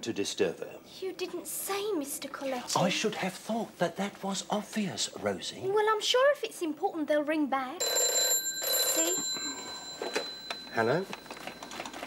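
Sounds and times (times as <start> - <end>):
telephone ringing: 7.8 - 12.0.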